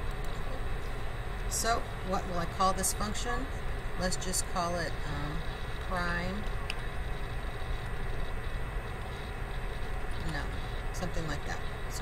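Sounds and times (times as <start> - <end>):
high steady whine: 0.0 - 12.0.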